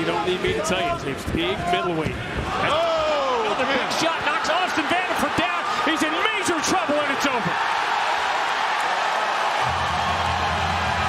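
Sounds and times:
arena crowd cheering: 0.0s - 11.0s.

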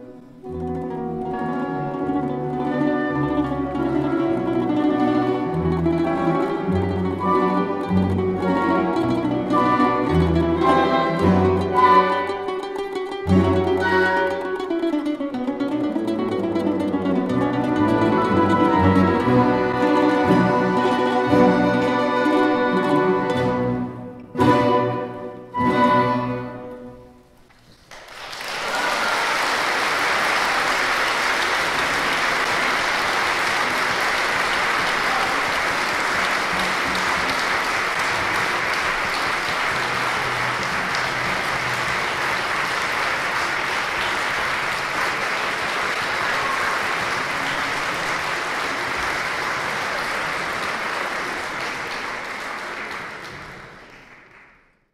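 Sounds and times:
large audience applauding: 27.4s - 54.9s.

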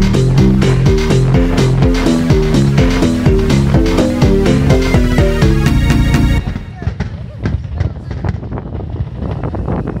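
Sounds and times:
fireworks popping and crackling: 0.0s - 2.8s, 6.4s - 10.0s
background music: 0.0s - 6.7s.

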